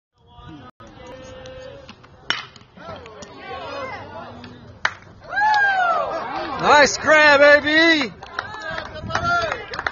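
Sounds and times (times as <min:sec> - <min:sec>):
bat cracking on baseball: 0:01.9 - 0:03.4
spectators shouting: 0:05.2 - 0:07.7.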